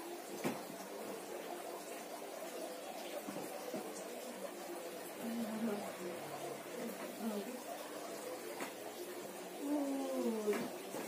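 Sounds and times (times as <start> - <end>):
woman moaning: 9.6 - 10.6.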